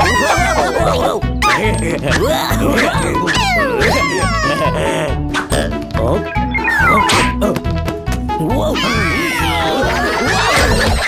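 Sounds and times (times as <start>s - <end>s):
squeaky cartoon vocalisations: 0.0s - 7.5s, 8.5s - 11.0s
cartoon background music: 0.0s - 11.0s.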